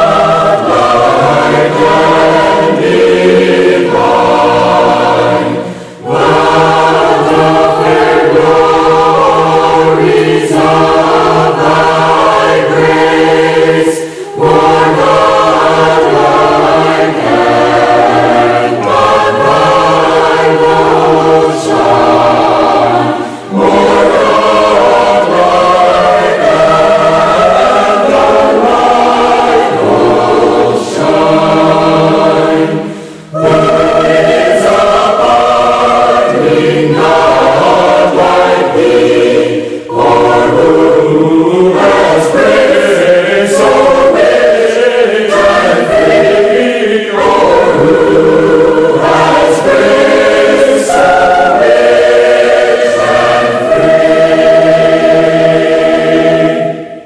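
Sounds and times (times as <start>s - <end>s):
choir singing a hymn: 0.0s - 57.0s.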